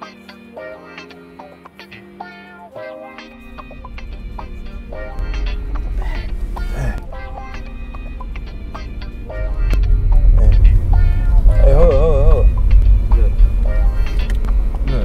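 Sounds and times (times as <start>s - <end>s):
soundtrack music with heavy bass: 3.4s - 15.0s
wavering held vocal note: 3.4s - 15.0s.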